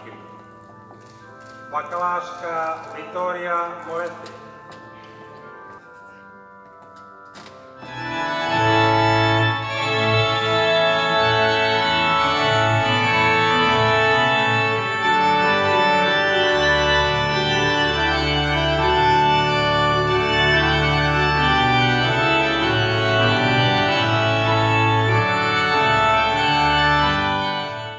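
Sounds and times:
organ music: 0.0s - 27.9s.

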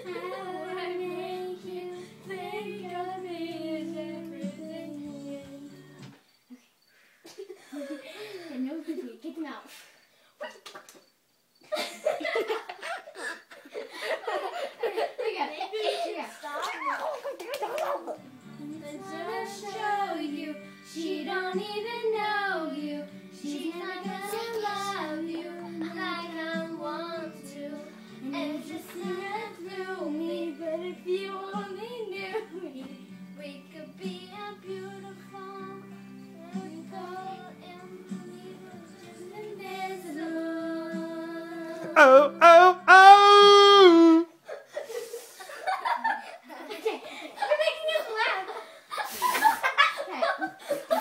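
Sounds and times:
girl singing karaoke: 0.0s - 6.0s, 18.5s - 43.1s
backing track music: 41.8s - 44.2s.

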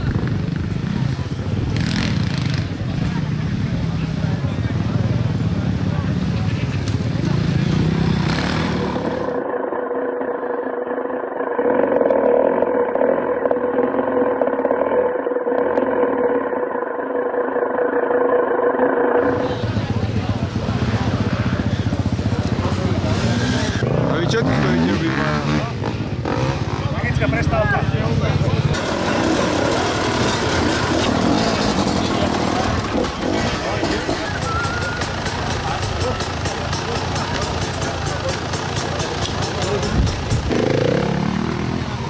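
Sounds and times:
people talking: 0.0s - 9.5s, 19.2s - 42.0s
motorcycle engines running: 0.0s - 16.6s, 19.2s - 42.0s.

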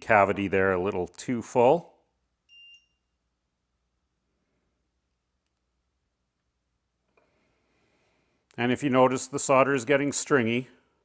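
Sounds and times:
high-pitched electronic beep: 2.5s - 3.1s.

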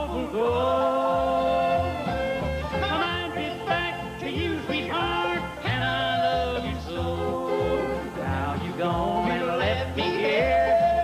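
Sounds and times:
acoustic guitar: 0.0s - 11.0s
bass notes: 0.0s - 11.0s
mandolin: 0.0s - 11.0s.

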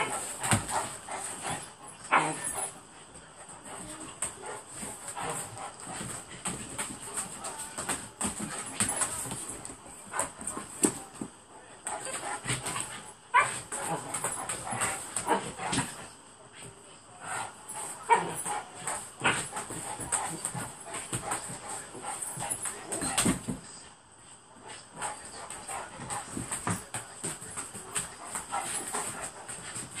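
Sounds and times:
dogs scuffling with sharp knocks: 0.0s - 30.0s.

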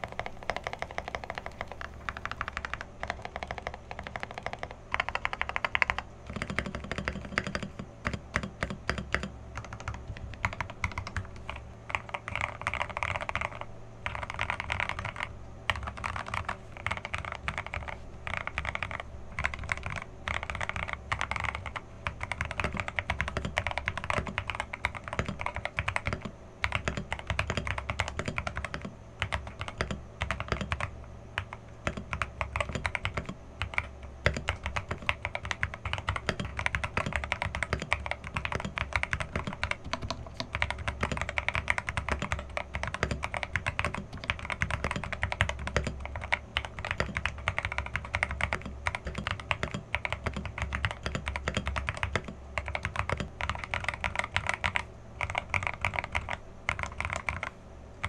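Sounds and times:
fast typing on mechanical keyboard: 0.0s - 57.6s.

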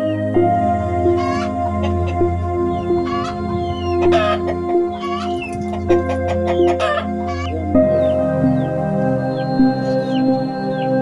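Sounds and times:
background music: 0.0s - 11.0s
chickens clucking: 1.0s - 8.7s.

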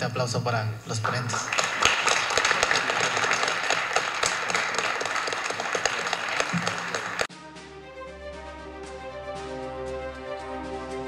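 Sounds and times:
audience applauding: 1.0s - 7.3s.

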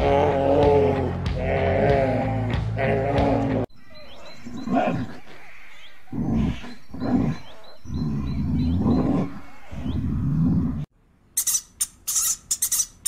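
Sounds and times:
bear making low rough calls: 0.0s - 10.9s
small birds chirping: 3.7s - 13.0s.

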